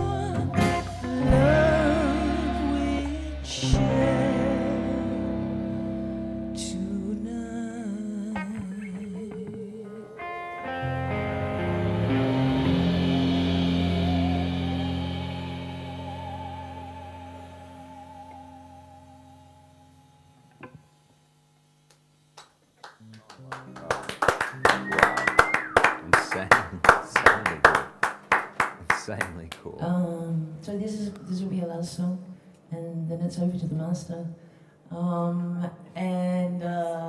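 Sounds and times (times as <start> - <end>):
band final chord ringing: 10.8 - 18.4
people clapping: 22.3 - 29.7.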